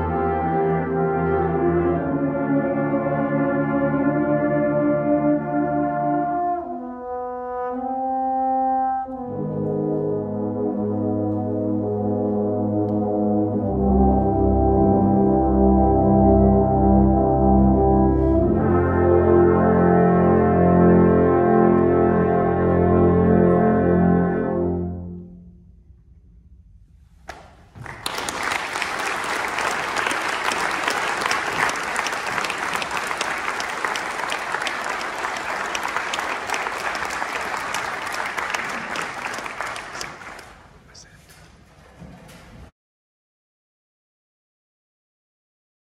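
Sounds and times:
brass choir holding a chord: 0.0 - 25.4
audience applauding: 27.7 - 40.7.

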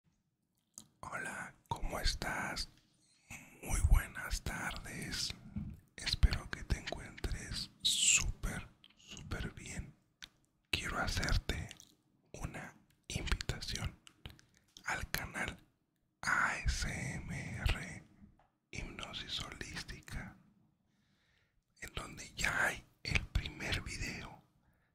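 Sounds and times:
man whispering into microphone: 0.8 - 10.0, 10.8 - 15.6, 16.2 - 18.2, 18.8 - 20.4, 21.8 - 24.5.

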